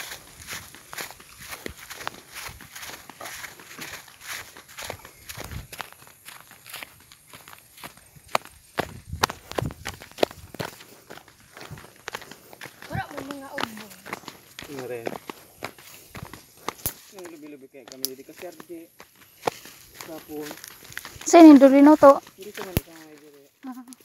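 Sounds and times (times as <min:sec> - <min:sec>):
footsteps through grass: 0:00.0 - 0:24.0
sharp snaps and clicks: 0:16.6 - 0:18.7, 0:22.6 - 0:23.0.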